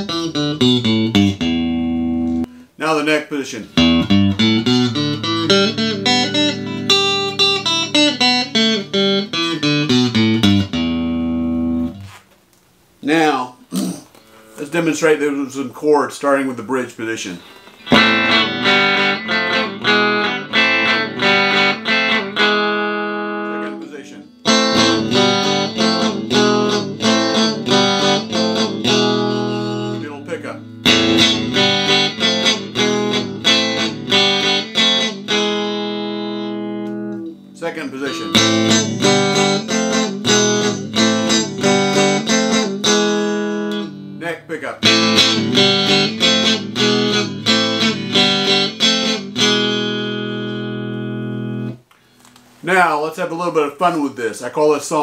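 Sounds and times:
electric guitar strumming chords: 0.0s - 2.7s, 3.6s - 12.1s, 17.8s - 52.4s.

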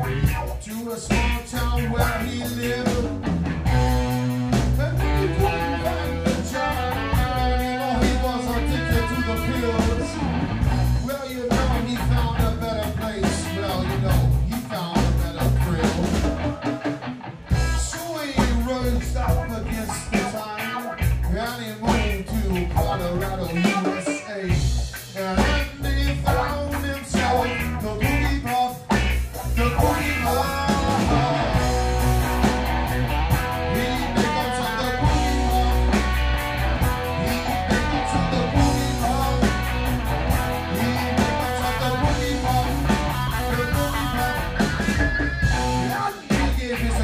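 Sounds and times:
blues-rock band playing: 0.0s - 47.0s
harmonica long held notes: 29.6s - 46.6s.

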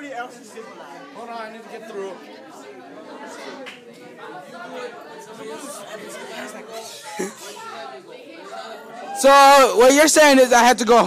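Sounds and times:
many voices talking: 0.0s - 11.0s.

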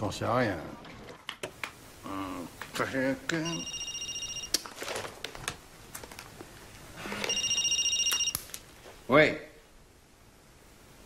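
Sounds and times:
mobile phone ringing: 3.4s - 4.6s, 7.0s - 8.6s.

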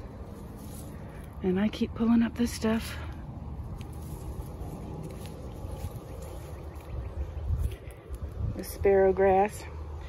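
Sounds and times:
low rumble: 0.0s - 10.0s
weeds pulled up by hand: 0.0s - 10.0s.

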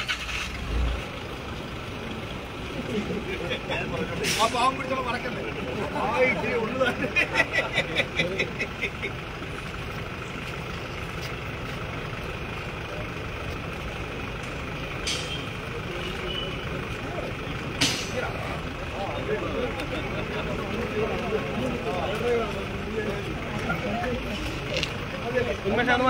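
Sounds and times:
ambulance engine idling: 0.0s - 26.0s
crowd murmur: 1.0s - 26.0s.

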